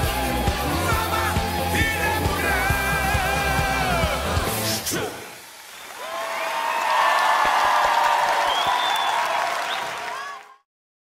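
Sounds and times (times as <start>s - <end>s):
audience applauding and cheering: 0.0s - 10.7s.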